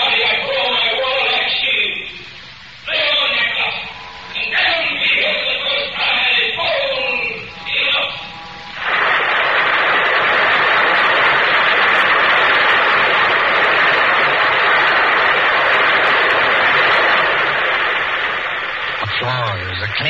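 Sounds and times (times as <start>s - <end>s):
audience applauding: 8.8s - 20.0s.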